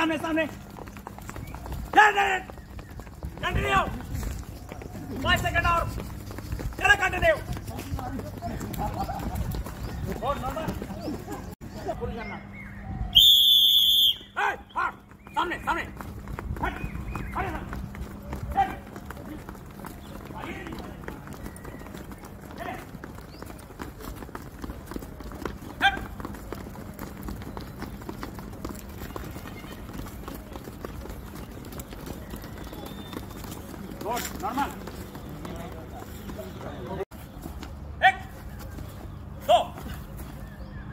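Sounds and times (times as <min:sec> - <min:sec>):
feet stamping on dirt: 0:00.0 - 0:12.0, 0:13.9 - 0:40.9
whistle blowing: 0:13.0 - 0:14.4.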